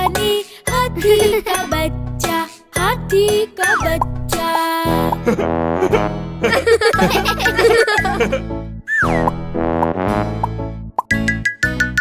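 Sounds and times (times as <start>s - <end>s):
cartoon pops: 8.9s - 11.2s.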